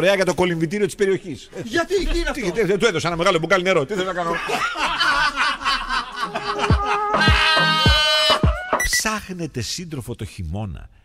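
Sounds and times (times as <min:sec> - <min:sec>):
people laughing: 0:04.0 - 0:08.4
music with deep beat: 0:06.6 - 0:08.9.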